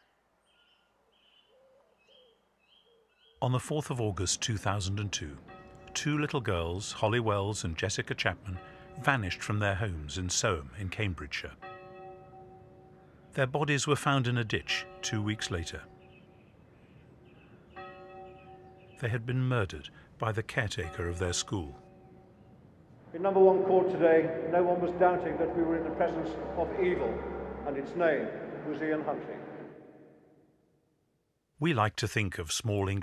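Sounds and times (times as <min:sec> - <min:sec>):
lower gliding bird calls: 0:00.0 - 0:03.4.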